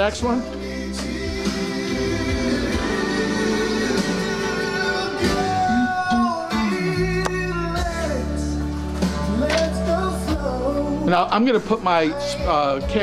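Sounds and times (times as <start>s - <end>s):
song with singing and guitar: 0.0s - 13.0s.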